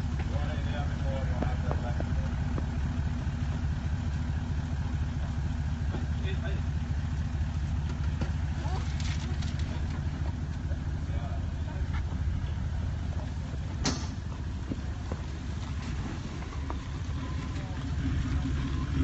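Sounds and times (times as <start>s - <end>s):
vehicle engine running low: 0.0s - 19.0s.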